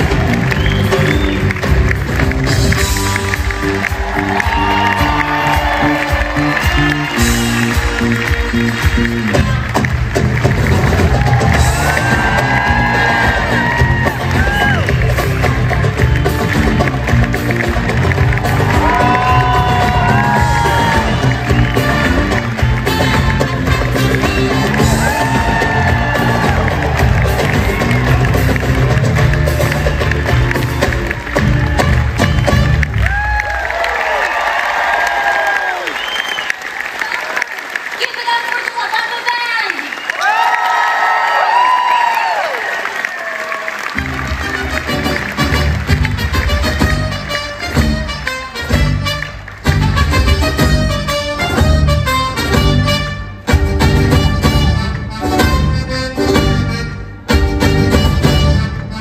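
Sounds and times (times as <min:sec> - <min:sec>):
audience cheering: 0:00.0 - 0:47.4
live band and singers: 0:18.3 - 0:29.9.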